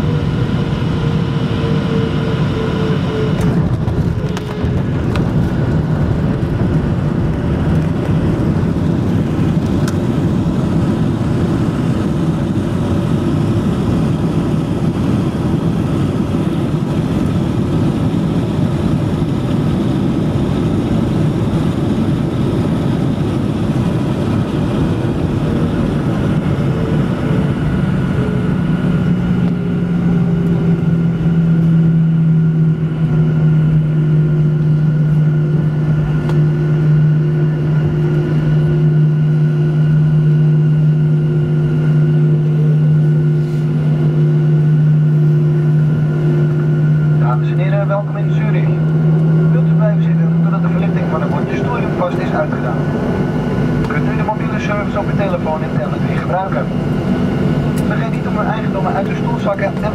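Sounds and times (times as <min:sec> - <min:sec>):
jet engine roar: 0:00.0 - 0:59.9.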